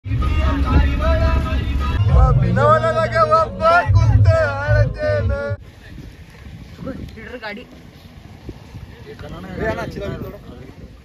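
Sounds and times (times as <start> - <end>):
van engine rumble: 0.0 - 9.2
road noise: 0.0 - 11.0
people's voices: 2.0 - 11.0.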